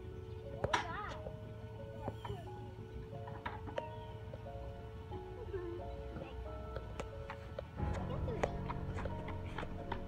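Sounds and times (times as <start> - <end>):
slow background music: 0.0 - 10.0.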